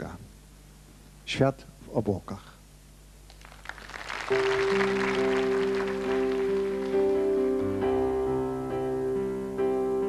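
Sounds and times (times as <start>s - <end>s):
audience clapping: 3.3s - 7.7s
keyboard sustaining chords: 4.3s - 10.0s.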